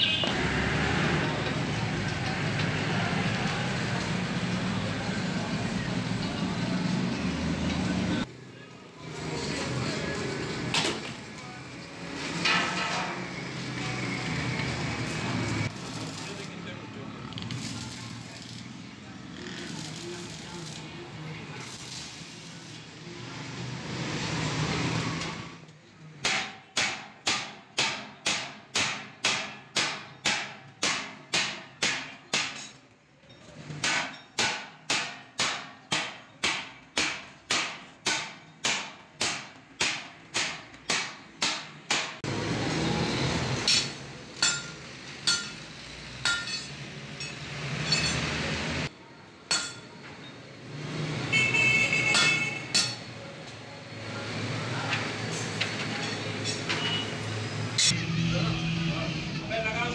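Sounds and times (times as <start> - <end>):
arc welding crackle: 15.5 - 23.0
hammer striking sheet steel: 26.2 - 32.8, 33.6 - 42.3, 43.6 - 45.6, 46.2 - 48.4, 49.5 - 49.9, 52.1 - 53.1.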